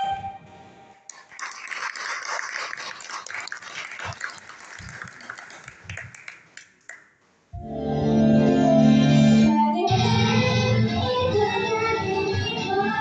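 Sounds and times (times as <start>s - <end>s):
audience clapping and cheering: 1.1s - 7.2s
live pop song: 8.6s - 13.0s.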